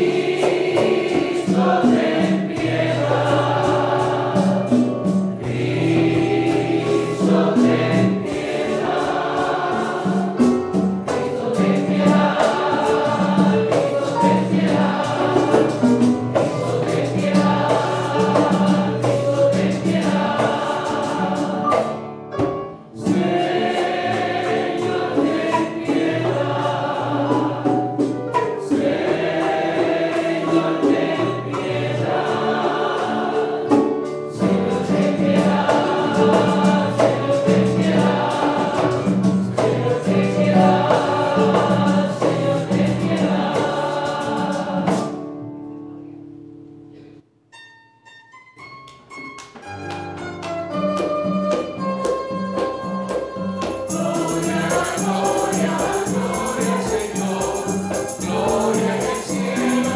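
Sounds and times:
church choir singing: 0.0s - 46.3s, 52.5s - 59.9s.

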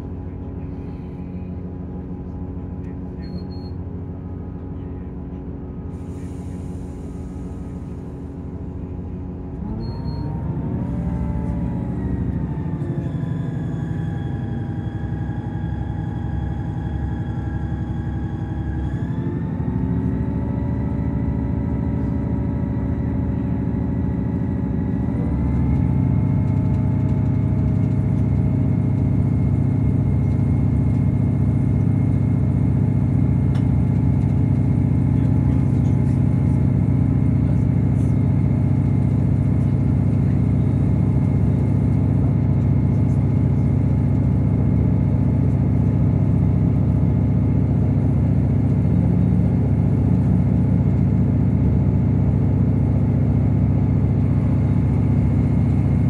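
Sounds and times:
train diesel engine accelerating: 0.0s - 56.0s.

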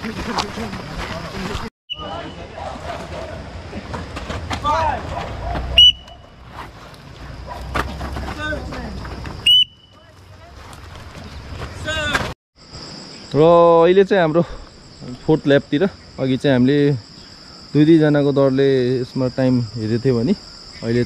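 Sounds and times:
short sharp whistle blasts: 1.9s - 2.4s, 5.7s - 6.3s, 9.4s - 10.0s
high insect trill: 5.7s - 21.0s.

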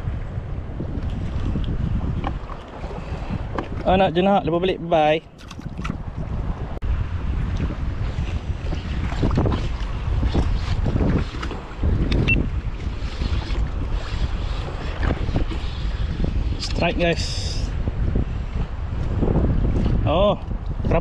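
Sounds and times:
water lapping around kayak: 0.0s - 4.6s, 5.2s - 21.0s
wind buffeting microphone: 0.0s - 21.0s.

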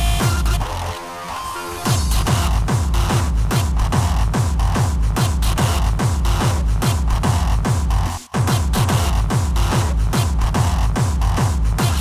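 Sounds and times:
heavy kick drum: 0.0s - 0.8s, 1.9s - 12.0s.

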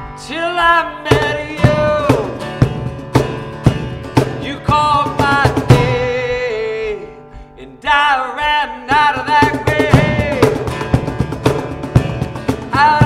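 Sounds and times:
man singing: 0.0s - 2.8s, 4.2s - 11.1s, 12.5s - 13.0s
acoustic guitar: 0.0s - 13.0s
cajon beats: 1.0s - 7.2s, 8.4s - 13.0s.

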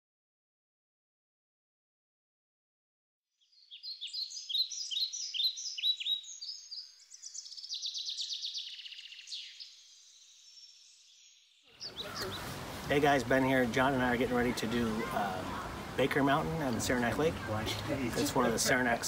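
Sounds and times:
songbird chirping and trilling: 3.3s - 13.7s
wind: 3.4s - 19.0s
man's voice: 12.9s - 19.0s.

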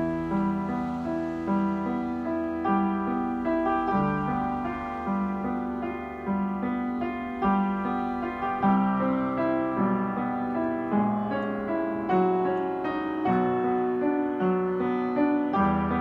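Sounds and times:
slow gentle piano: 0.0s - 16.0s.

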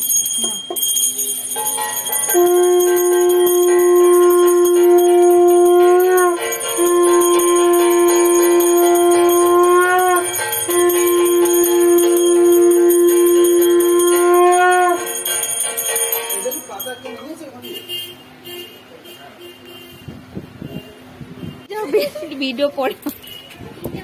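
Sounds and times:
bell ringing: 0.0s - 17.6s
conch shell blowing: 1.9s - 16.7s.

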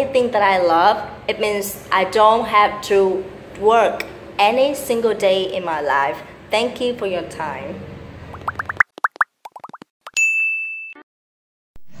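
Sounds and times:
cartoon bloops rising in pitch: 8.3s - 9.9s
bright ding: 10.2s - 11.0s.

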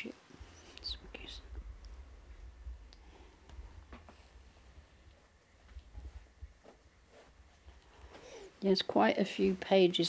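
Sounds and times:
faint rustling: 0.1s - 8.6s
soft breath: 2.9s - 5.3s, 7.1s - 8.6s.

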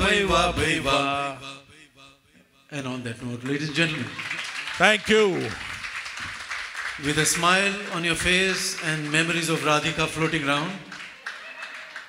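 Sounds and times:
man singing: 0.0s - 1.8s.

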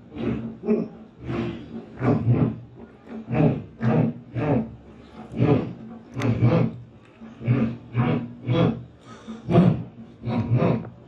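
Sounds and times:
man crying out in rough bursts: 7.6s - 10.9s.

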